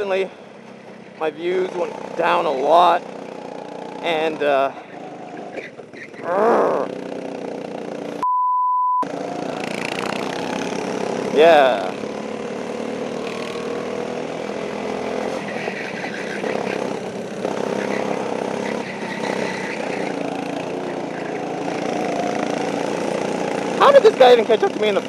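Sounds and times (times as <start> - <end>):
go-kart engines revving: 0.0 - 8.2, 9.0 - 25.0.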